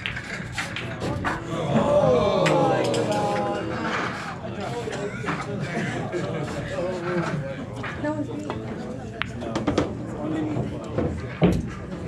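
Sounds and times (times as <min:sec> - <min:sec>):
spectators groaning: 0:01.5 - 0:03.9.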